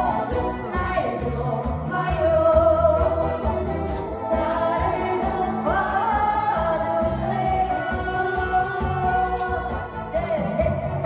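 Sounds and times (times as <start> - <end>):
backing track with bass beat: 0.0 - 11.0
woman singing into a microphone: 0.0 - 11.0.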